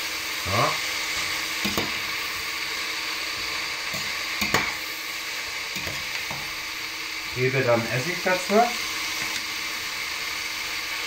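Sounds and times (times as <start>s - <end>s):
vegetables sizzling in hot oil: 0.0s - 11.0s.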